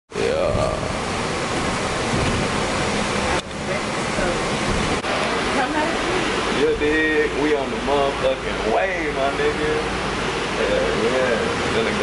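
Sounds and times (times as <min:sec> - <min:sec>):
bus engine and ventilation noise: 0:00.2 - 0:12.0.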